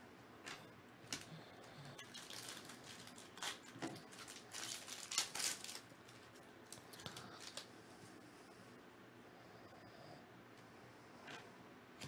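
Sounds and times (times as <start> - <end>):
cards and foil wrapper rustling: 2.0 - 7.7.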